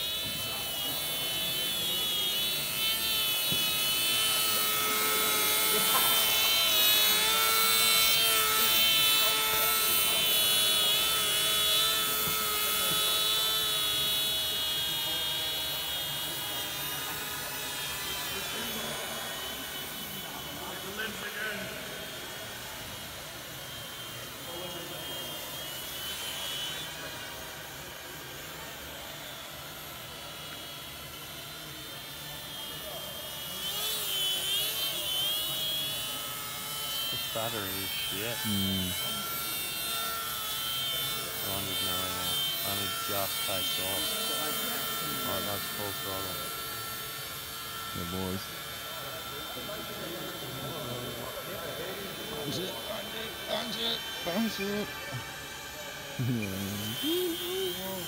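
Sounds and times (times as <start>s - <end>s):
model plane motor whining: 0.0s - 58.0s.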